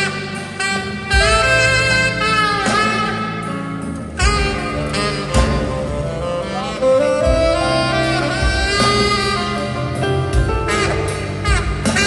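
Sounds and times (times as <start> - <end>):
tenor saxophone solo: 0.0 - 12.0.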